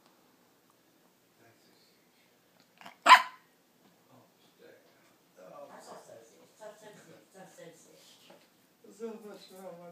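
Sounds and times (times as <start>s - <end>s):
puppy barking: 2.8s - 3.5s.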